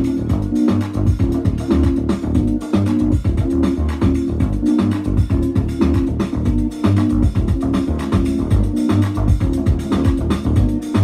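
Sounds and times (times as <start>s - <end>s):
dance music with bass line: 0.0s - 11.0s.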